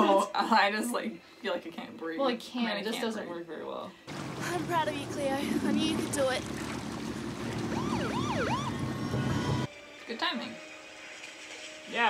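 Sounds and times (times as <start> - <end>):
emergency siren yelping: 7.0 - 9.7.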